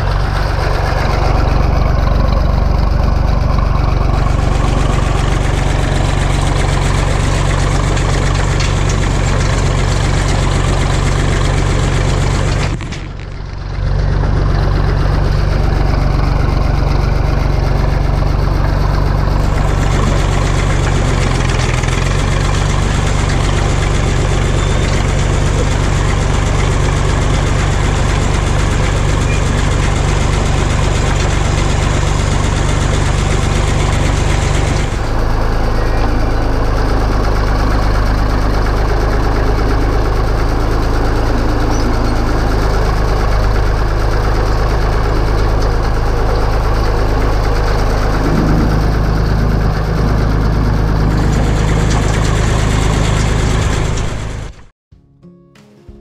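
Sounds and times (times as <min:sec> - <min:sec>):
tractor engine running: 0:00.0 - 0:54.7.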